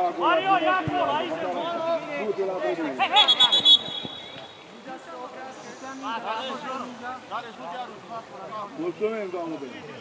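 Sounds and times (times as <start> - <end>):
referee's whistle trilling: 3.1 - 4.7.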